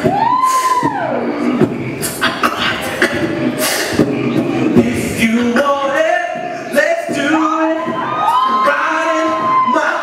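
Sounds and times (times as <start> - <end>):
beatbox kick thumps: 0.0 - 8.1
hissing beatbox snare: 0.4 - 5.3.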